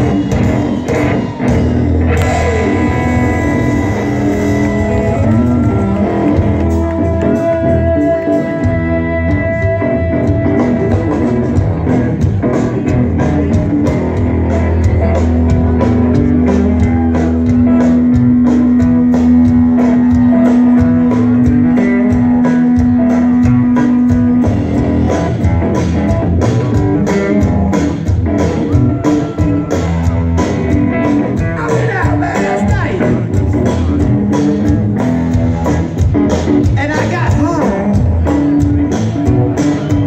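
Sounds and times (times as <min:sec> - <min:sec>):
drum kit beat: 0:00.0 - 0:40.0
electric guitars: 0:00.0 - 0:40.0.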